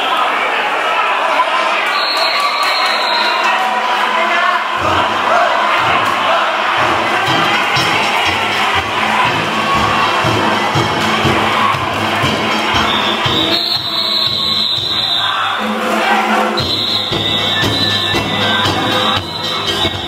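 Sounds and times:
crowd shouting: 0.0s - 20.0s
drums and gongs rapid beat: 4.8s - 20.0s
shrill high note: 12.5s - 20.0s.

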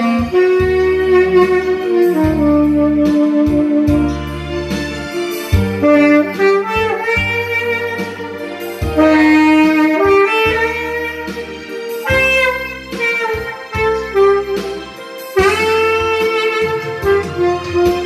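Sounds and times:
backing track bass line: 0.0s - 18.0s
tenor saxophone ballad melody: 0.0s - 18.0s.

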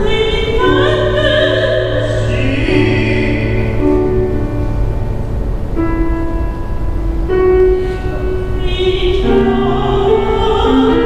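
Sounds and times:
woman singing opera with vibrato: 0.0s - 4.5s, 7.8s - 11.0s
grand piano chords: 0.0s - 11.0s.

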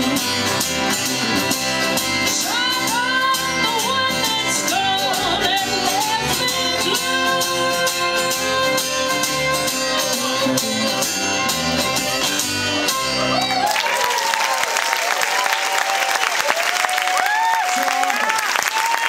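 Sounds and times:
bluegrass band playing: 0.0s - 13.8s
woman singing: 2.2s - 11.5s.

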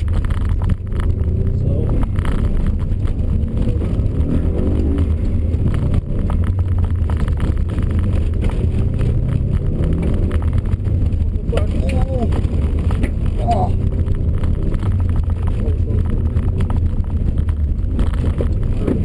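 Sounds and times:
car engine under load: 0.0s - 19.0s
road noise: 0.0s - 19.0s.

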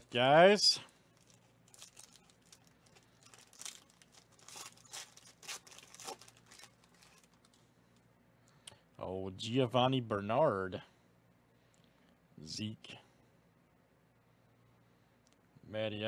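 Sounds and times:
foil wrapper tearing and crinkling: 1.2s - 7.6s.

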